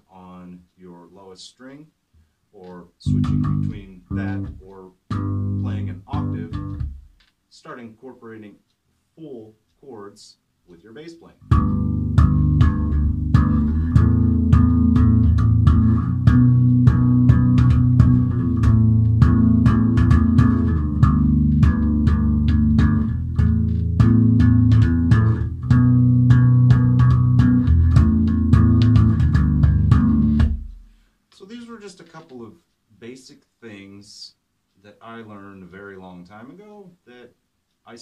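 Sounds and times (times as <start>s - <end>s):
slap bass guitar: 3.0s - 7.2s, 11.4s - 30.9s.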